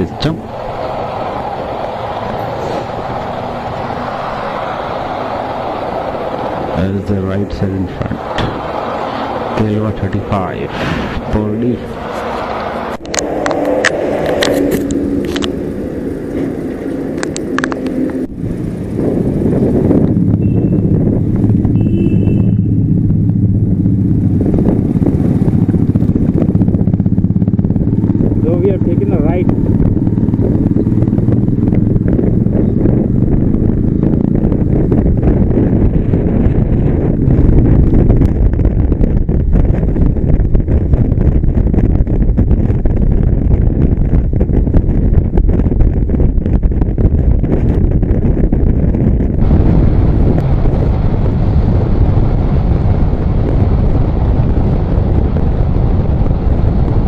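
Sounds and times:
road noise: 0.0 - 57.0
wind noise: 0.0 - 57.0
motorcycle engine running: 11.2 - 57.0.

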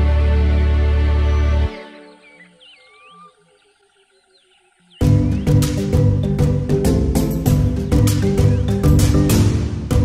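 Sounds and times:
background music: 0.0 - 3.4, 4.9 - 10.0
faint high chirping calls: 1.7 - 6.0.

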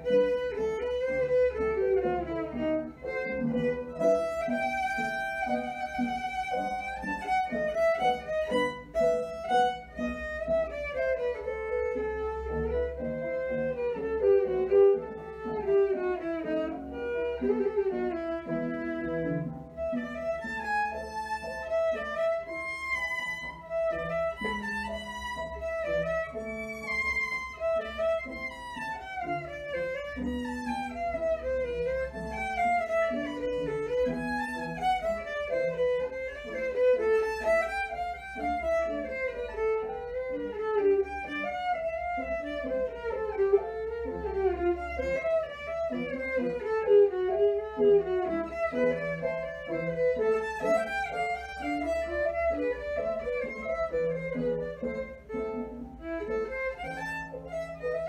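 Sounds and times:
solo violin fast passages: 0.0 - 58.0.

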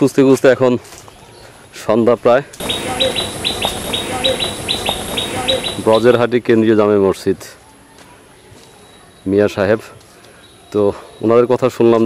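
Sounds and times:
high insect drone: 2.6 - 6.2
bird chirping rapidly: 2.6 - 6.3
man's voice: 5.2 - 6.3.

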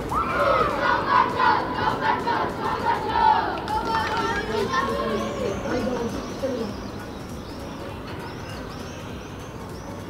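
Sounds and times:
boys calling out: 0.1 - 6.8
bird chirping: 4.7 - 10.0.

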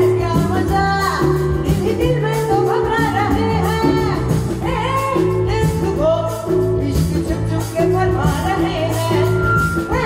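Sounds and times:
hand drums: 0.0 - 10.0.

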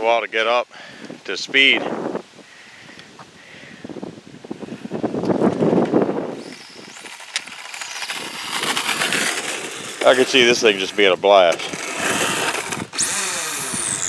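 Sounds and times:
tyre noise on asphalt: 3.1 - 14.0
electric motor whine: 6.3 - 14.0.

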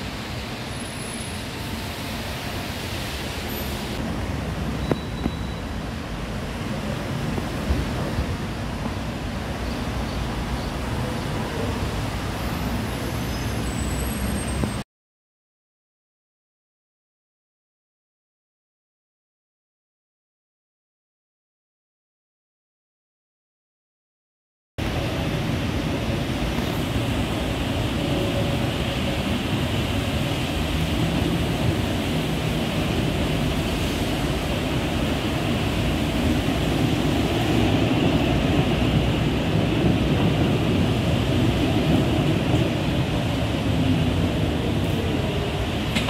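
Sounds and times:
tram rumbling: 0.0 - 14.8, 24.8 - 46.0.

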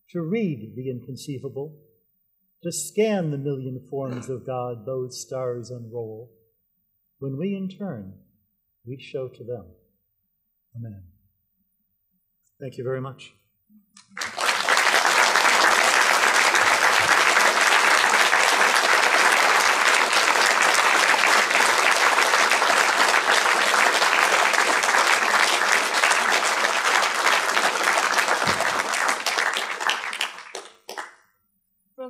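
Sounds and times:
audience applauding: 14.0 - 31.2.

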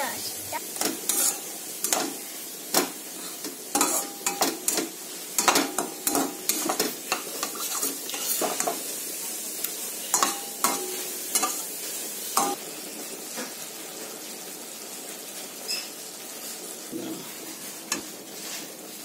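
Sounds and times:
cooking mixture sizzling: 0.0 - 19.0
spatula scraping metal pan: 0.6 - 8.9, 10.1 - 11.7.

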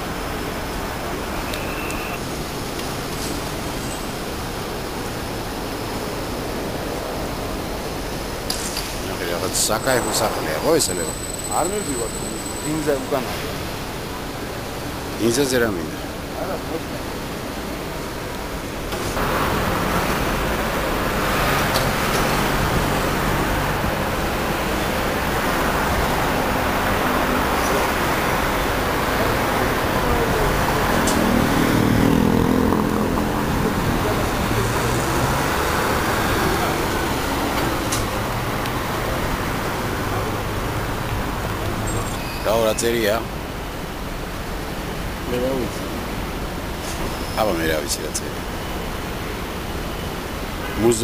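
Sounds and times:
city street traffic: 0.0 - 51.0.

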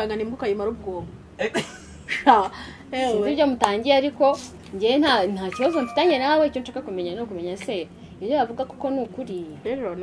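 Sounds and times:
woman talking: 2.2 - 10.0
short steady high tone: 5.5 - 7.0.

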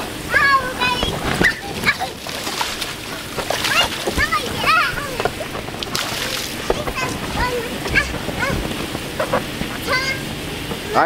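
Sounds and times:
water spraying and splashing: 0.0 - 11.0.

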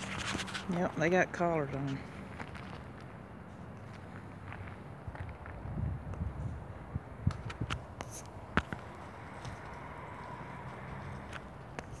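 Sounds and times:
outdoor background noise: 0.0 - 12.0
sharp taps and crackles: 7.2 - 9.6.

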